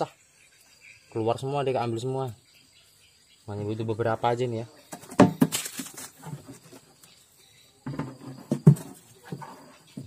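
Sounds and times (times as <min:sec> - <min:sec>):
fish flapping in plastic can: 0:05.4 - 0:06.2.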